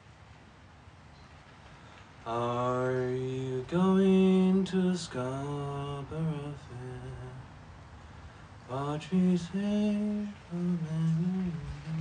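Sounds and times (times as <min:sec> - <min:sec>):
man humming a slow tune: 0:02.3 - 0:07.5, 0:08.7 - 0:12.0.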